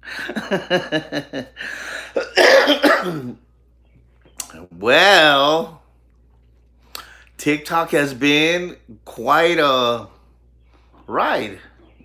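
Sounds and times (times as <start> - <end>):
man laughing: 0.0 - 2.9
man coughing hard: 2.0 - 3.4.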